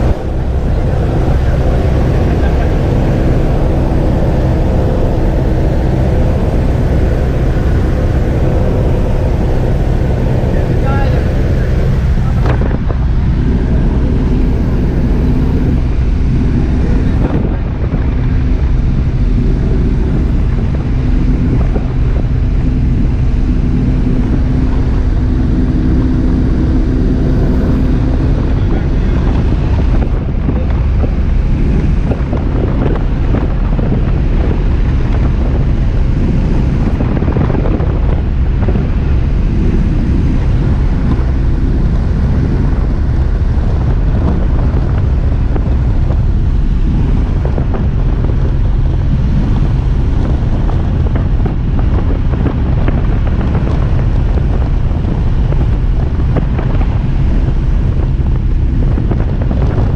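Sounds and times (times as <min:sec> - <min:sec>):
propeller airplane engine droning: 0:00.0 - 0:59.9
wind noise on microphone: 0:00.0 - 0:59.9.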